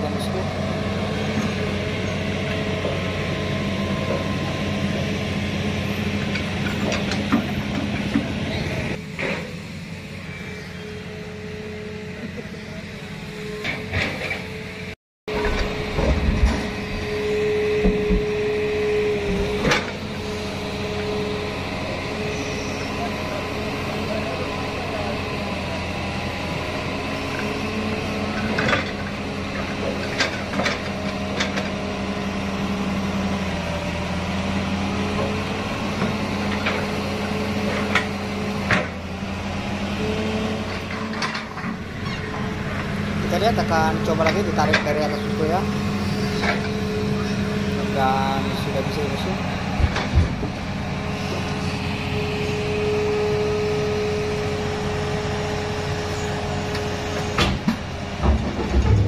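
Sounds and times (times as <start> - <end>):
excavator diesel engine running: 0.0 - 59.0
metallic clanks: 57.4 - 59.0.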